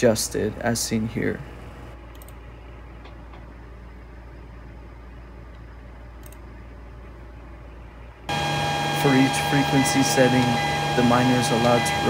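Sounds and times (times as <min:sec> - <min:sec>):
low electrical hum: 0:00.0 - 0:12.0
loud steady machine whine: 0:08.3 - 0:12.0.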